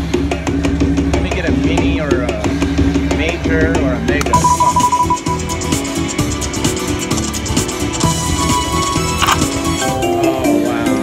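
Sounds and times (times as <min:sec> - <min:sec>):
slot machine electronic bonus music: 0:04.3 - 0:10.2.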